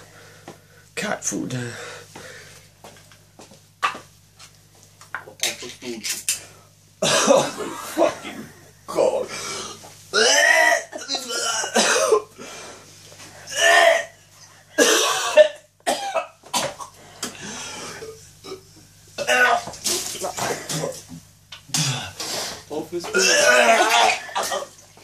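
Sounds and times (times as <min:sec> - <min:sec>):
man coughing and retching: 0:07.0 - 0:09.2, 0:10.1 - 0:12.3, 0:14.8 - 0:17.0, 0:18.4 - 0:21.0, 0:21.7 - 0:22.2, 0:23.0 - 0:24.8.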